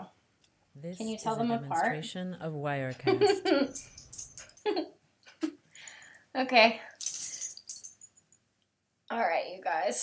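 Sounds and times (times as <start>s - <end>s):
dog collar tags jingling: 3.7s - 4.8s, 7.0s - 8.4s.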